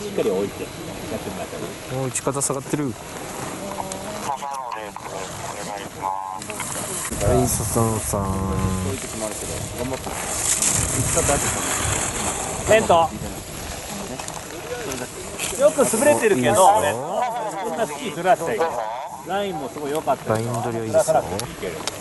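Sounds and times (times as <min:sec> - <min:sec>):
outdoor background noise: 0:00.0 - 0:22.0.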